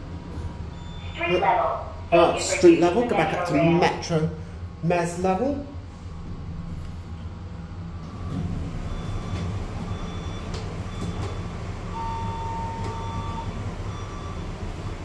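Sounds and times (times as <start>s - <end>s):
steady low rumble: 0.0s - 14.3s
longer lower beep: 0.7s - 1.4s, 11.9s - 14.4s.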